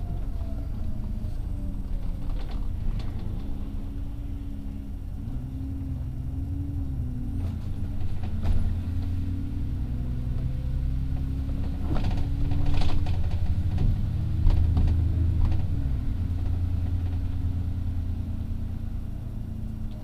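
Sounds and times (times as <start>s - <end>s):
bus engine drone: 0.0s - 20.0s.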